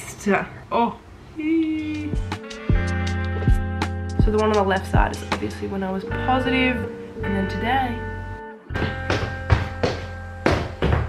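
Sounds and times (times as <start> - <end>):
background music with held tones: 1.7 - 11.0
footsteps thudding down stairs: 8.7 - 11.0.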